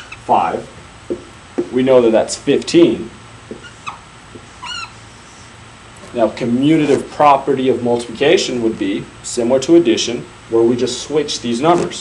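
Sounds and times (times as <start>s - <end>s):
marker squeaking on whiteboard: 0.0s - 0.3s, 3.5s - 5.5s.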